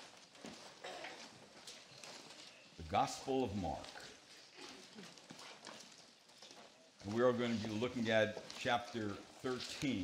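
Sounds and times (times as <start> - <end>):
soft taps and rustles: 0.0 - 10.0.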